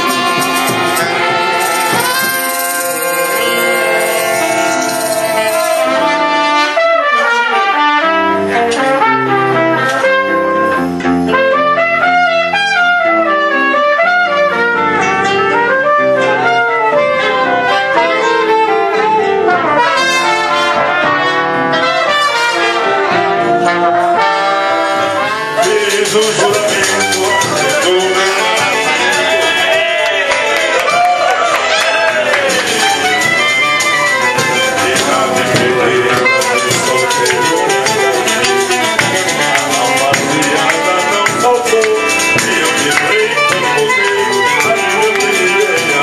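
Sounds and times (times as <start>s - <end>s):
choro ensemble playing: 0.0s - 46.0s
saxophone melody: 0.0s - 46.0s
trumpet melody: 0.0s - 46.0s.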